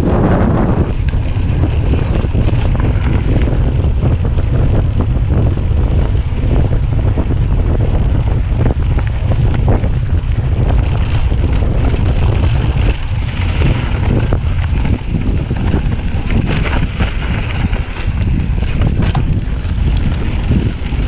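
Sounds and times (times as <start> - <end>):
wind buffeting microphone: 0.0 - 21.0
bike rattles and knocks: 0.9 - 21.0.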